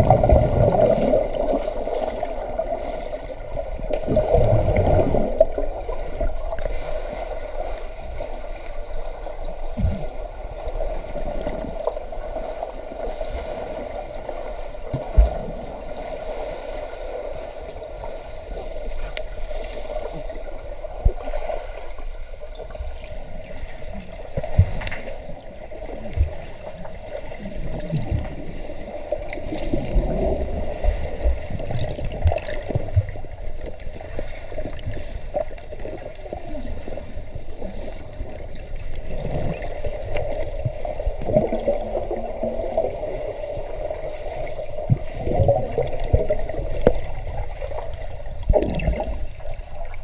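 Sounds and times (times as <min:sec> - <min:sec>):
underwater bubbling and churning: 0:00.0 - 0:50.0.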